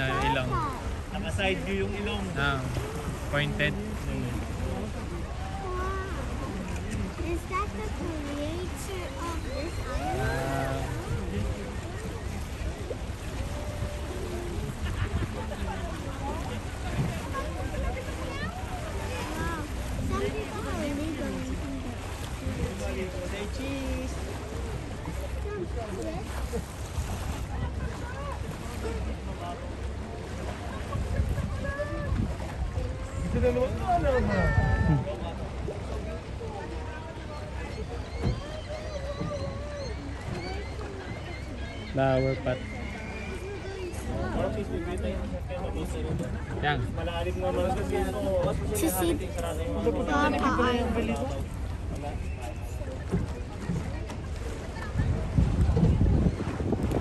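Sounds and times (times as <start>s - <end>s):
boat engine rumble: 0.0s - 57.0s
water washing around hull: 0.0s - 57.0s
wind on microphone: 2.4s - 24.3s, 30.2s - 35.9s, 44.0s - 57.0s
faint voices of passengers: 24.0s - 57.0s.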